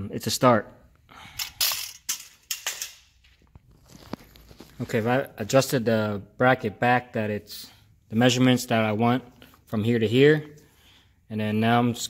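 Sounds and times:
metal parts scraping: 1.3 - 3.1.

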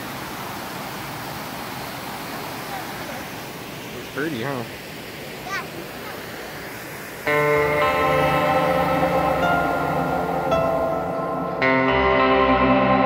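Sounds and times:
water rushing over rapids: 0.0 - 11.6
sustained keyboard chords: 7.3 - 13.0.

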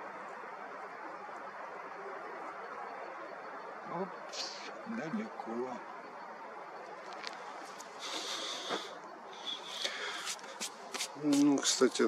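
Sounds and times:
hissy breaths: 7.9 - 10.8.

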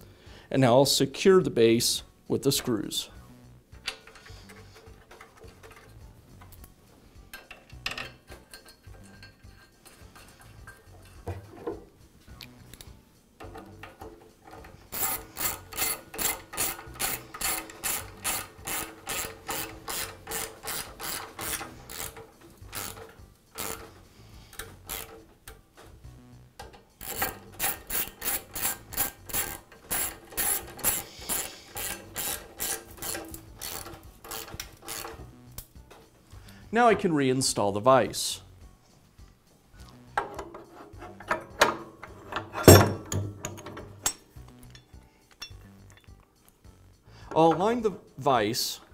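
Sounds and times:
ratchet wrench ratcheting: 3.8 - 6.7, 12.4 - 25.6, 26.6 - 35.8.

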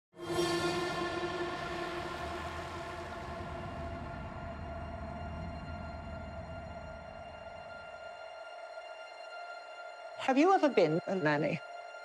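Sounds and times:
low hum: 0.2 - 8.4
drone of steady tones: 0.2 - 10.1.

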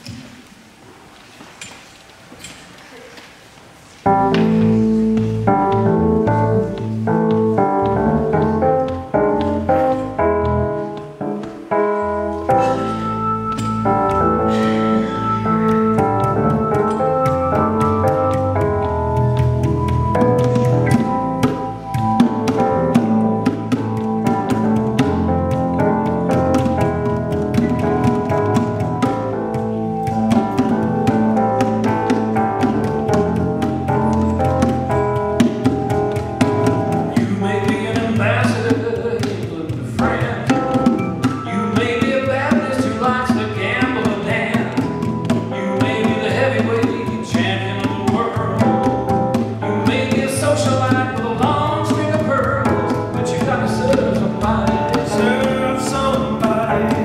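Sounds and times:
sustained keyboard chords: 4.0 - 57.0
electric bass line: 4.1 - 10.8, 11.7 - 38.7
bongo strikes: 12.4 - 57.0.

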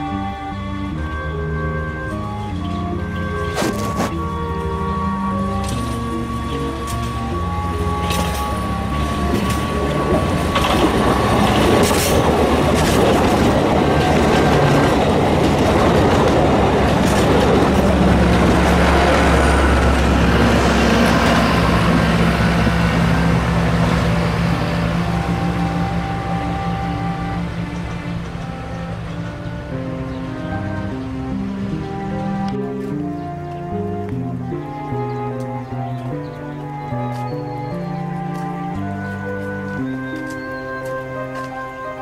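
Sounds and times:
diesel locomotive engine: 0.0 - 42.0
train wheels on rails: 2.1 - 33.0.

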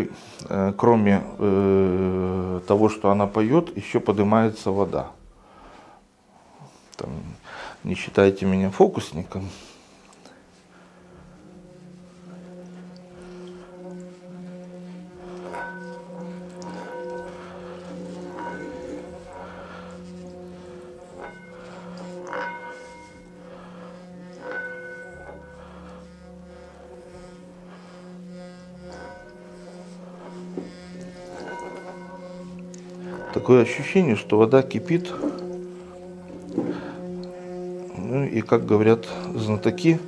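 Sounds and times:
singing bowl humming and ringing: 0.0 - 5.5, 7.0 - 40.0
water crackling in bowl: 28.8 - 38.0.

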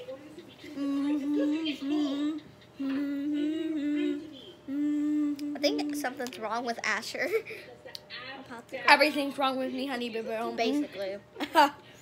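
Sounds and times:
girl humming a tune: 0.7 - 6.2.

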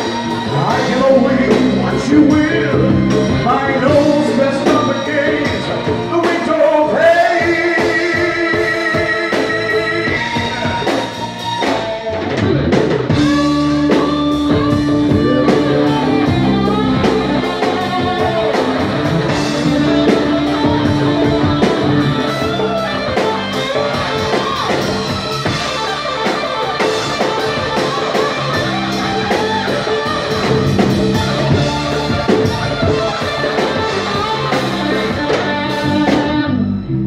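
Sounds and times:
drum kit: 0.0 - 37.0
electric guitar lead notes: 0.0 - 37.0.

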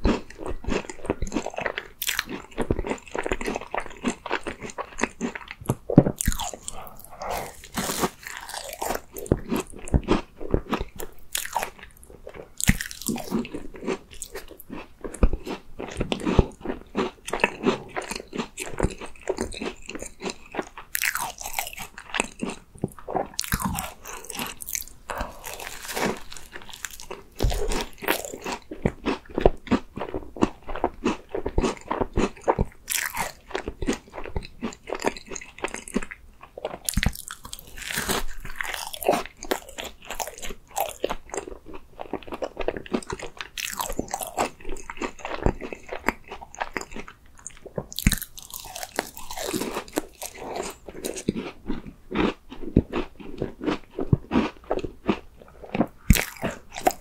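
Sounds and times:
biting and chewing: 0.0 - 57.0
pastry shell crunching: 23.4 - 29.2, 36.7 - 47.0.

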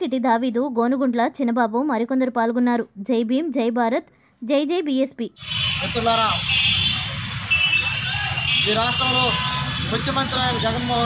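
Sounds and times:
man speaking: 8.6 - 11.0.

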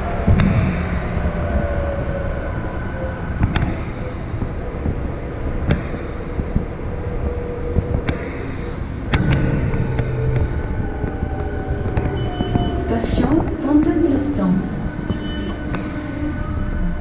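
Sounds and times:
faint whine: 0.0 - 17.0
metro train rumbling in tunnel: 0.0 - 17.0.

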